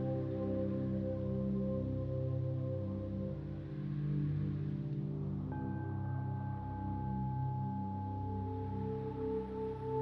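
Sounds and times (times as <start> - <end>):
crystal singing bowls: 5.5 - 10.0.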